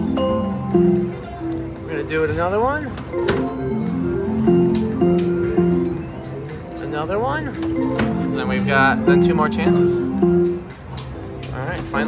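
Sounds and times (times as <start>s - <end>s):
slot machine electronic spin tones: 3.1s - 10.9s.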